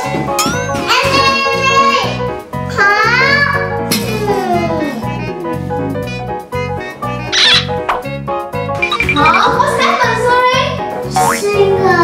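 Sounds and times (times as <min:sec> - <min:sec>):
upbeat children's music: 0:00.0 - 0:12.0.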